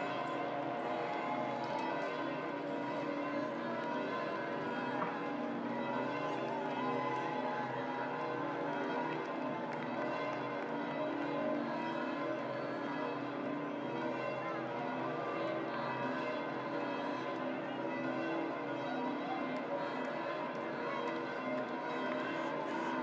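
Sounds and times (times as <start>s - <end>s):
crowd voices: 0.0s - 23.0s.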